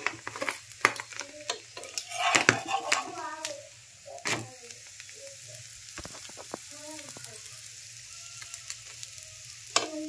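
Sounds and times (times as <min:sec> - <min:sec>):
light frying sizzle: 0:00.0 - 0:10.0
metal spatula scraping griddle: 0:01.8 - 0:03.3.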